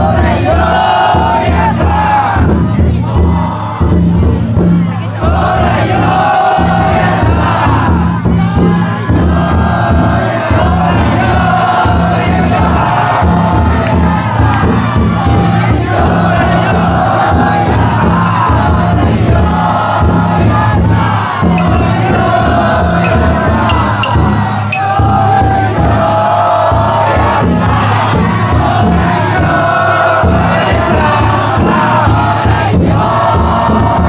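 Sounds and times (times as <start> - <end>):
crowd shouting chants: 0.0 - 34.0
drum beaten in steady rhythm: 0.0 - 34.0.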